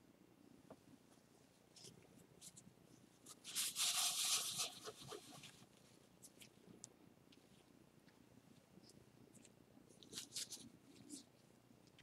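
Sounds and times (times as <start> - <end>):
paper tissue rustling: 3.2 - 6.4, 10.0 - 11.3.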